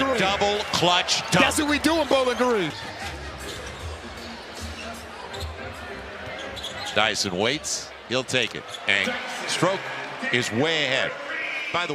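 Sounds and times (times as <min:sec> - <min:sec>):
crowd murmur: 0:02.5 - 0:08.0.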